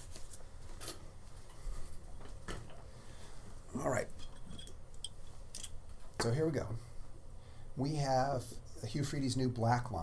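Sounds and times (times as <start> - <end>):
metal dental instruments clicking: 4.6 - 5.8.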